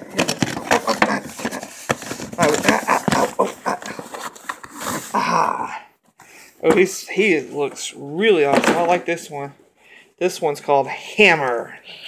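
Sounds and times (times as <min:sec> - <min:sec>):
low voice sounds: 0:05.1 - 0:05.9.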